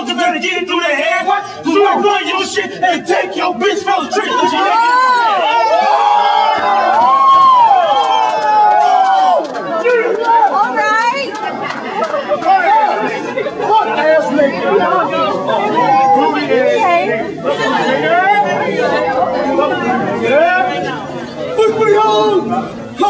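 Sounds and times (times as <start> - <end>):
men talking and shouting: 0.0 - 23.0.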